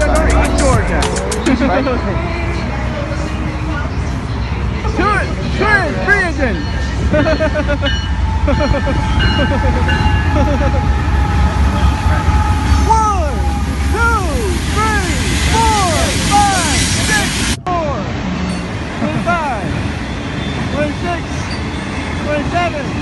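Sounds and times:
train rumble: 0:00.0 - 0:23.0.

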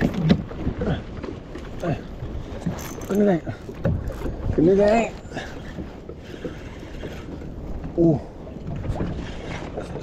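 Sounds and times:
water lapping against a kayak: 0:00.0 - 0:10.0.

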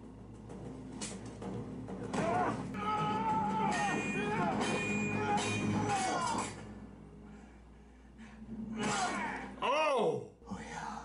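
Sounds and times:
dramatic film score music: 0:00.0 - 0:11.0.

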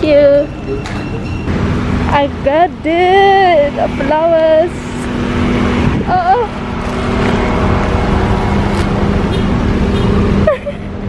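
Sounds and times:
car engine idling: 0:00.0 - 0:11.0
wind rumbling on microphone: 0:04.9 - 0:10.4.

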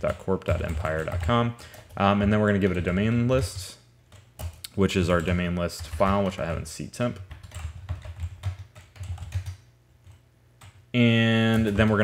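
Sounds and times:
typing on a computer keyboard: 0:00.0 - 0:06.5, 0:07.2 - 0:10.8, 0:11.4 - 0:12.0.

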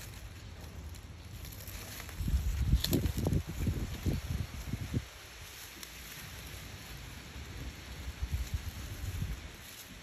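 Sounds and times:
faint outdoor hiss: 0:00.0 - 0:10.0.

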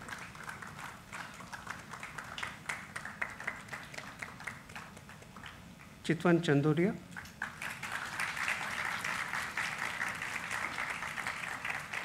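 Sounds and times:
audience applauding: 0:00.0 - 0:05.6, 0:07.2 - 0:12.0.

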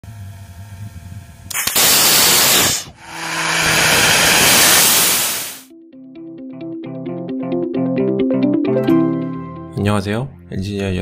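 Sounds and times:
rocket engine rushing hiss: 0:01.5 - 0:05.7.

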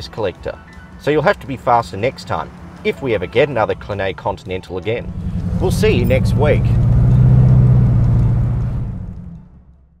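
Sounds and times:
car engine droning: 0:04.8 - 0:10.0.

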